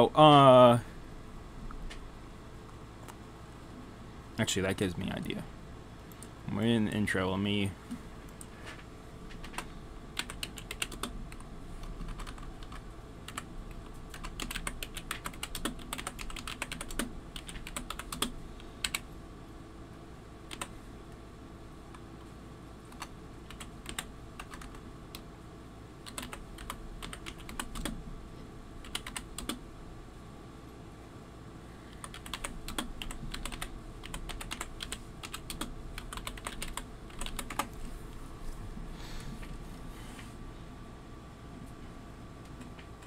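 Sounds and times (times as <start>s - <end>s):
air-conditioner hum: 0.0s - 43.0s
typing on keyboard: 9.4s - 13.5s, 14.1s - 19.0s, 20.5s - 20.7s, 22.9s - 24.8s, 26.0s - 28.0s, 28.8s - 29.6s, 32.0s - 37.7s.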